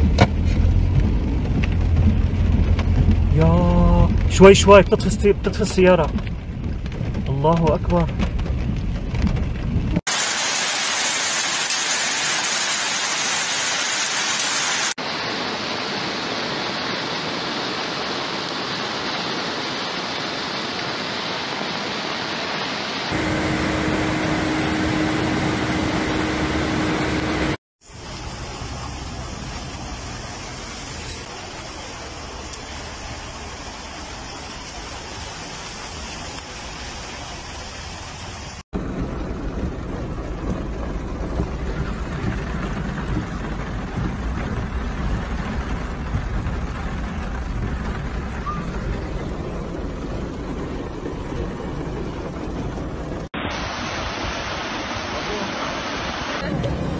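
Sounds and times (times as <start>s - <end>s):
floodwater rushing: 0.0s - 56.9s
heavy rain: 0.0s - 56.9s
low hum: 23.2s - 27.6s.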